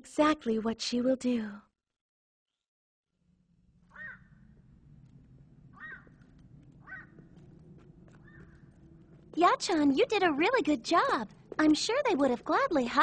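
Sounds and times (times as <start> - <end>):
low background hum: 3.4 - 13.0
faint bird calls: 3.8 - 4.6, 5.7 - 7.4, 8.2 - 8.7.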